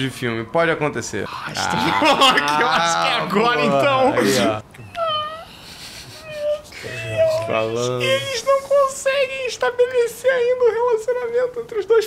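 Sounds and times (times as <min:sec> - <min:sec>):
man's high-pitched squeaky laugh: 0:04.2 - 0:08.3.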